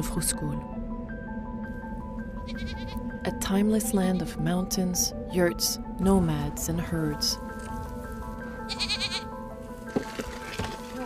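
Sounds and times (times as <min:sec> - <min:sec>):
background music of sustained tones: 0:00.0 - 0:11.0
livestock bleating: 0:02.4 - 0:03.0, 0:08.6 - 0:09.4.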